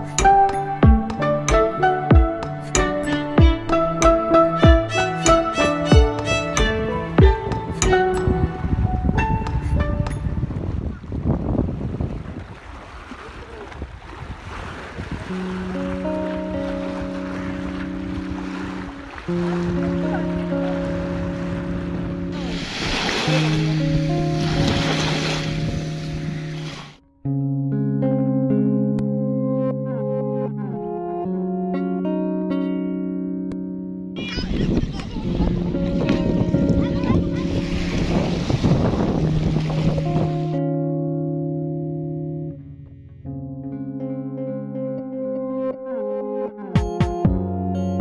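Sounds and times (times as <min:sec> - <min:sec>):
guitar background music: 0:00.0 - 0:10.9, 0:15.3 - 0:48.0
wind buffeting microphone: 0:06.0 - 0:26.8, 0:34.2 - 0:40.6
small waves on stony shore: 0:11.8 - 0:27.0
small waves breaking on rocks: 0:12.1 - 0:16.0
background music sustained chord: 0:15.5 - 0:27.3.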